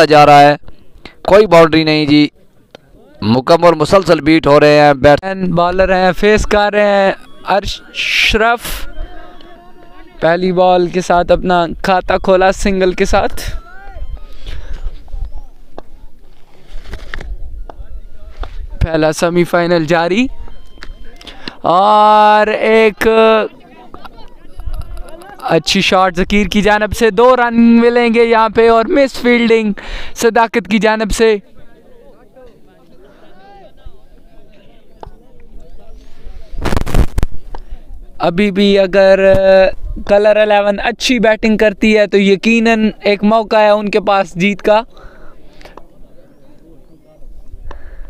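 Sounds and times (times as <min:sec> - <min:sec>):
distant players calling out: 0:06.1 - 0:16.3, 0:17.4 - 0:25.9
rapid crackling pops: 0:36.6 - 0:38.0.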